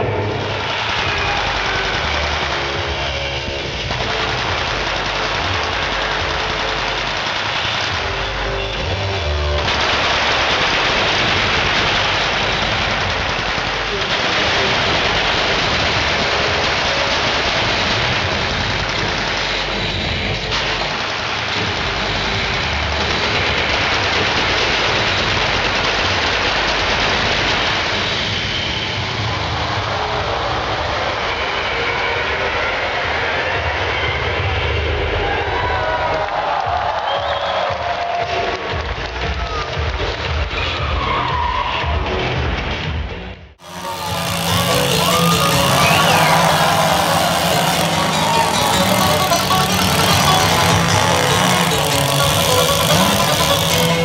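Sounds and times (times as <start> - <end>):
rapid machine-gun fire: 9.6 - 19.5.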